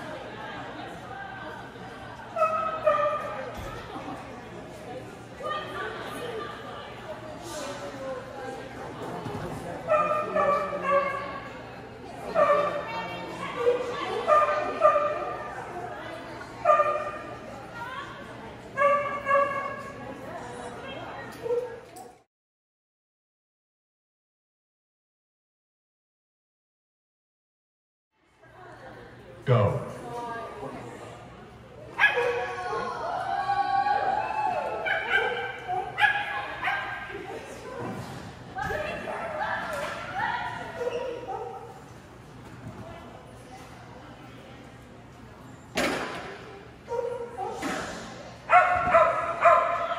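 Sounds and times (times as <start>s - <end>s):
dog barking high-pitched: 34.8s - 37.0s, 48.5s - 49.9s.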